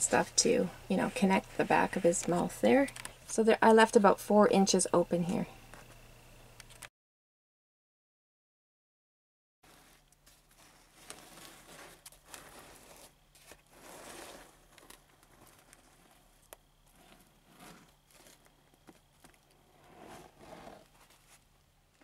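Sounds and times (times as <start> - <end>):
aluminium foil crinkling: 9.6 - 19.8.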